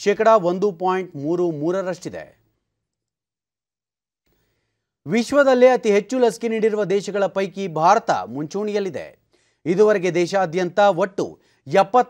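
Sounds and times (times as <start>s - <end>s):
person speaking: 0.0s - 2.4s.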